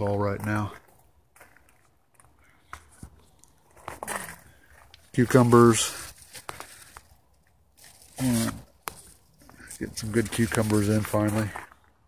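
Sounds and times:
foliage rustling: 2.9 - 11.6.

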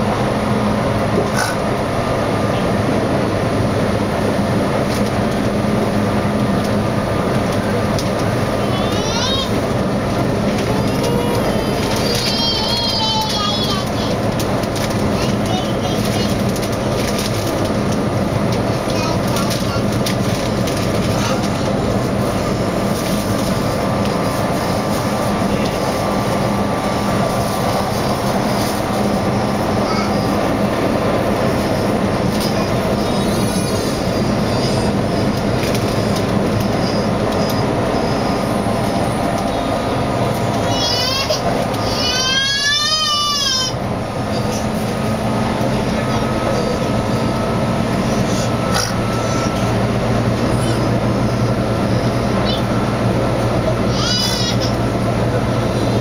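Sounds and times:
train wheels rumbling on rail: 0.0 - 56.0
rail joint clicks: 4.7 - 33.0, 33.9 - 43.6.

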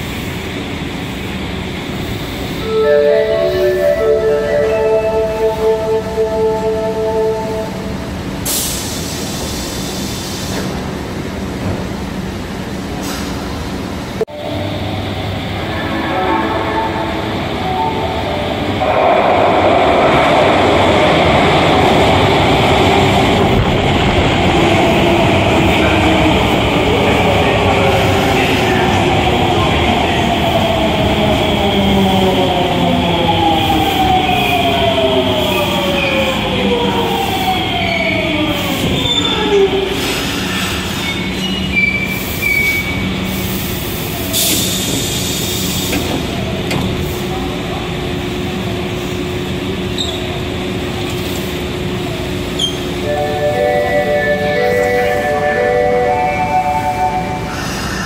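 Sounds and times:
subway train rumbling: 0.0 - 58.0.

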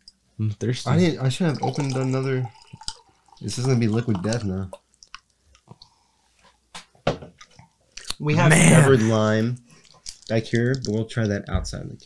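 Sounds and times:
person gulping from a glass: 1.5 - 4.8.

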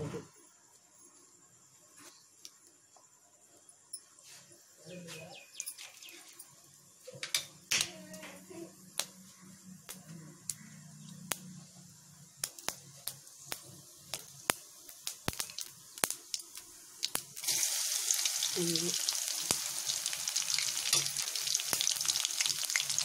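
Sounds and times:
hot oil popping and crackling: 8.9 - 23.0.

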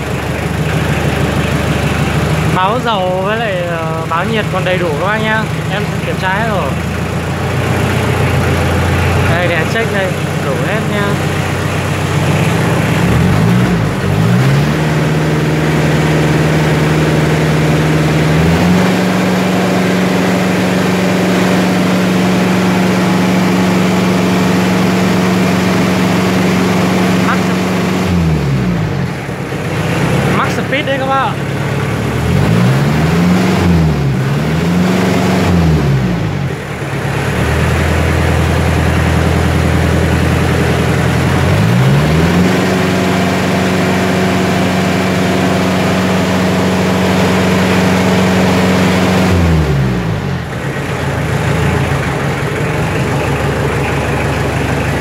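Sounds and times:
tractor diesel engine revving: 0.0 - 55.0.

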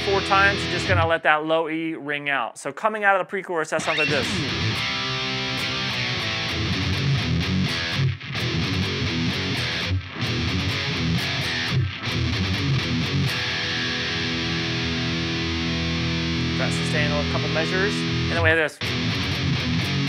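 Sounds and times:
distorted electric guitar riff: 0.0 - 1.2, 3.8 - 20.0.

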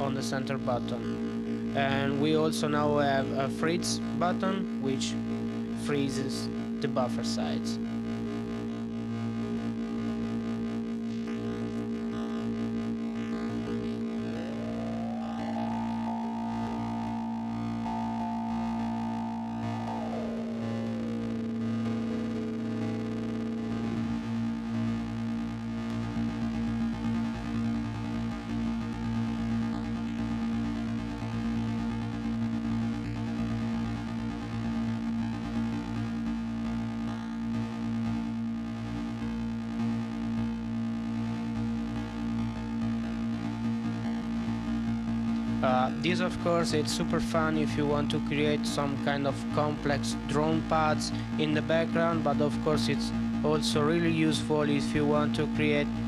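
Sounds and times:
synthesizer tones gliding in pitch: 0.0 - 26.6
steady low hum: 0.0 - 56.0.

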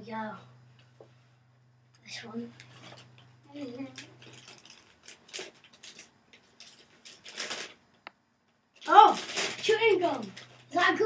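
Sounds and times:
paper bag crinkling and rustling: 3.8 - 7.8, 8.8 - 11.0.

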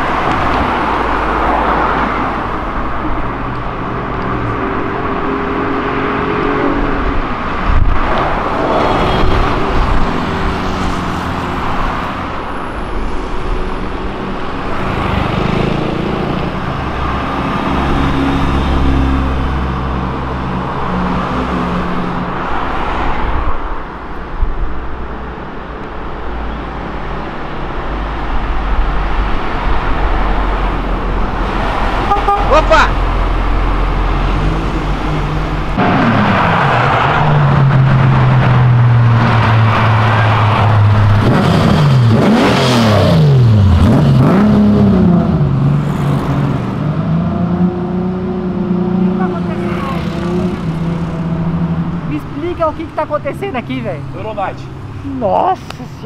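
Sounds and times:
cars driving past: 0.0 - 56.0
car engine revving: 29.7 - 54.9.

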